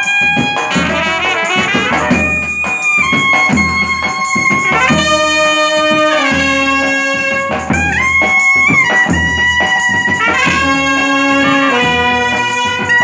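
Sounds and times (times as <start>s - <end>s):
snare and bass drums beating: 0.0s - 13.0s
trumpet and euphonium melody: 0.0s - 13.0s.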